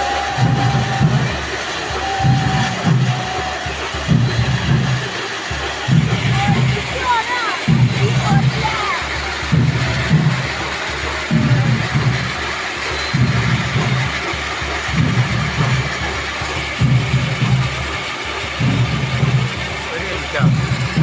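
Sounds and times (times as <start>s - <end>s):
firework fountain hissing and crackling: 0.0s - 21.0s
low rhythmic beat: 0.0s - 21.0s.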